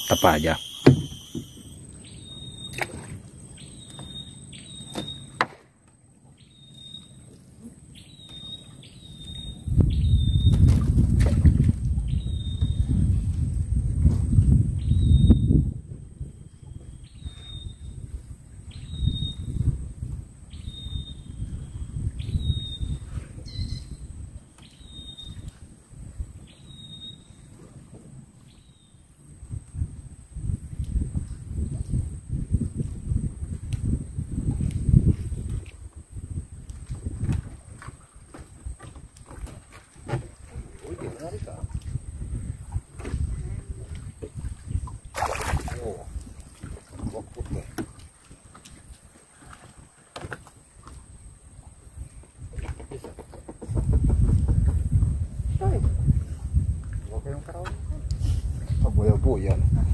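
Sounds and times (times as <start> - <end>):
short high chirps: 0.0 - 2.8
wind buffeting microphone: 9.3 - 28.5, 29.1 - 59.9.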